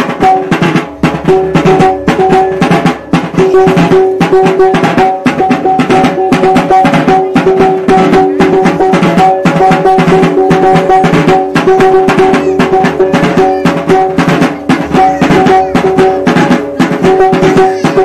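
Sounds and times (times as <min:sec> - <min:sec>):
barrel drum beaten fast: 0:00.0 - 0:18.0.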